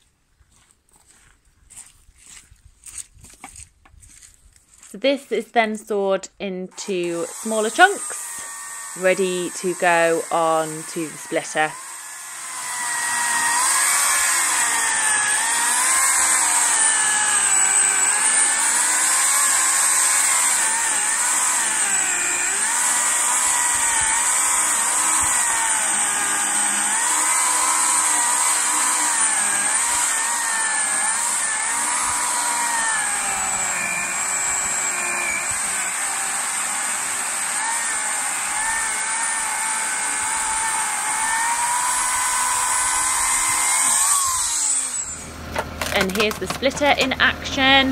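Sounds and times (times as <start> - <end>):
chainsaw cutting wood: 6.7 - 47.9.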